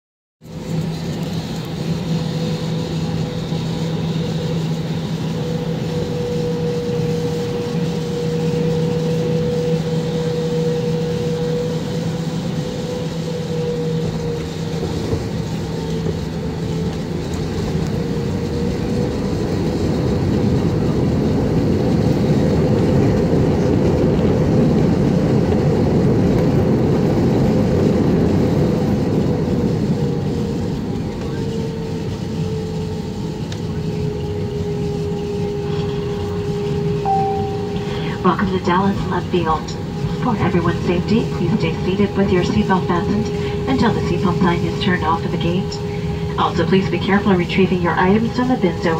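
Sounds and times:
jet engine drone in cabin: 0:00.4 - 0:48.9
rushing roar of plane braking: 0:00.5 - 0:48.9.

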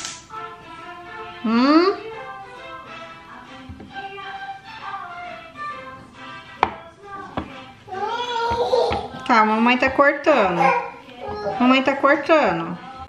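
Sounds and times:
background music with held notes: 0:00.0 - 0:13.0.

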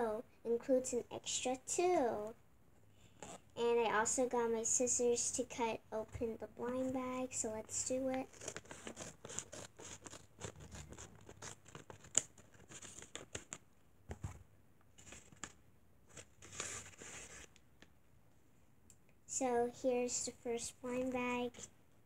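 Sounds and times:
scissors snipping paper: 0:08.3 - 0:13.5
paper rustling: 0:08.3 - 0:14.4, 0:15.0 - 0:17.6.

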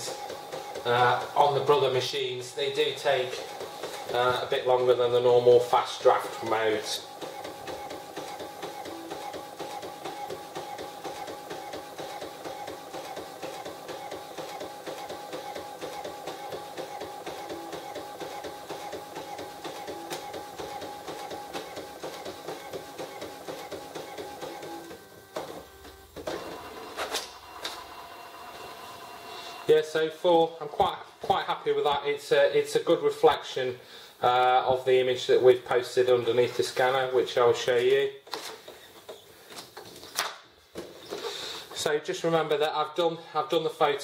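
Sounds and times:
printer clicks: 0:00.0 - 0:02.0, 0:02.6 - 0:05.1, 0:06.0 - 0:27.9
print head shuttling: 0:00.0 - 0:27.3
printer paper feed whir: 0:00.0 - 0:32.0.

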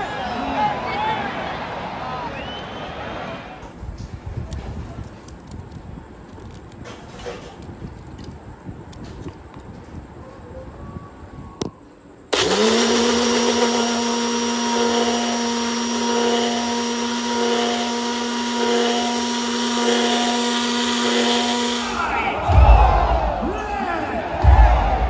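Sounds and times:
crowd noise: 0:00.0 - 0:05.2, 0:16.6 - 0:25.0
mixer grinder motor whine: 0:12.3 - 0:22.0.

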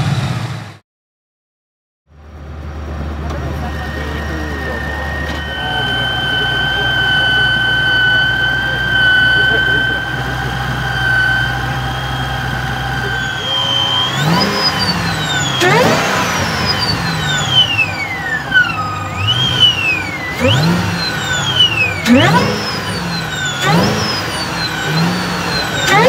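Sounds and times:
car engine idling and revving: 0:00.0 - 0:00.8, 0:02.1 - 0:26.0.

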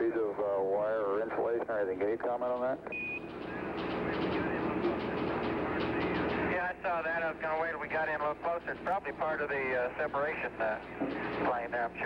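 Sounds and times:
faint hum: 0:00.0 - 0:12.0
radio static hiss: 0:00.1 - 0:12.0
short radio beep: 0:02.9 - 0:03.3.

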